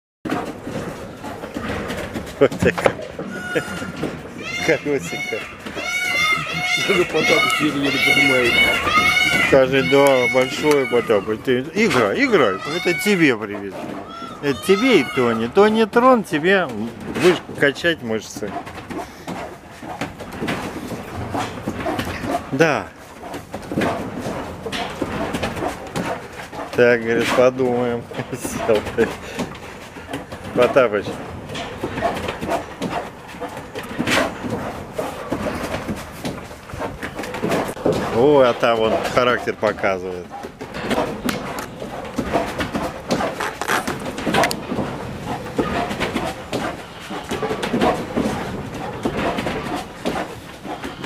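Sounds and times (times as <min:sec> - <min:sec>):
bear vocalizing: 0:01.2 - 0:15.8, 0:18.2 - 0:27.4
high voices calling and shrieking: 0:03.2 - 0:16.5
person talking: 0:06.2 - 0:18.4
rubber tyre handled: 0:15.9 - 0:51.0.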